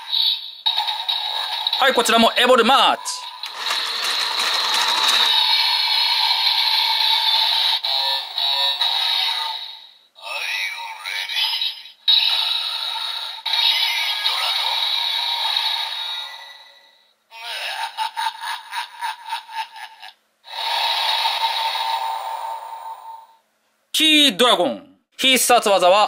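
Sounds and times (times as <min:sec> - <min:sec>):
synthesized toy voice: 0:04.4 - 0:16.6, 0:17.3 - 0:18.0.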